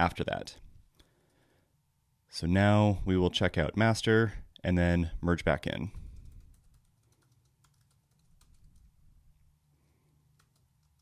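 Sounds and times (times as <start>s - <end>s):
computer keyboard clicks: 6.1s - 8.9s, 10.4s - 11.0s.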